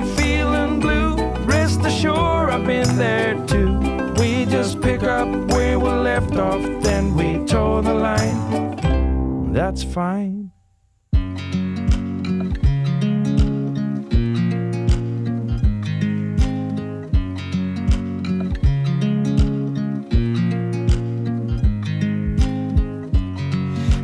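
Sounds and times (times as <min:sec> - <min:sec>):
pop music with acoustic guitar: 0:00.0 - 0:10.3, 0:11.2 - 0:24.0.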